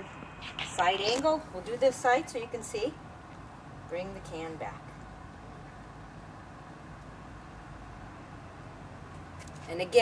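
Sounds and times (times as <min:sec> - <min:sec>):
outdoor ambience rumble and hiss: 0:00.0 - 0:10.0.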